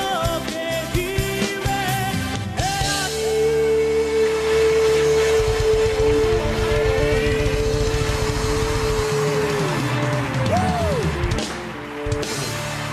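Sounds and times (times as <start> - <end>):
man singing: 0.0 - 10.0
drums and bass: 0.0 - 12.9
live band music: 0.0 - 12.9.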